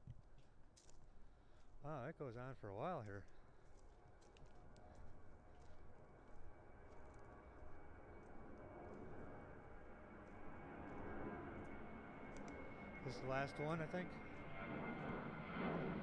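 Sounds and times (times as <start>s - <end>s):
distant airplane drone: 0.0s - 16.0s
faint steady whine: 0.0s - 16.0s
faint ticks: 12.3s - 12.6s.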